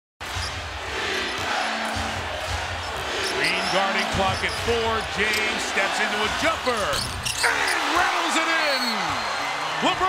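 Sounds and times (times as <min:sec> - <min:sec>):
arena crowd noise: 0:00.2 - 0:10.0.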